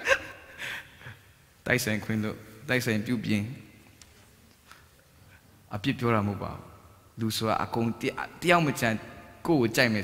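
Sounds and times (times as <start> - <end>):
short breath: 0.5 - 1.2
man speaking: 1.6 - 3.7, 5.7 - 10.0.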